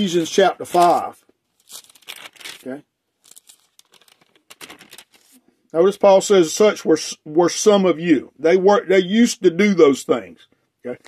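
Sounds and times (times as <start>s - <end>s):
thin pages rustling: 0.1s - 5.4s.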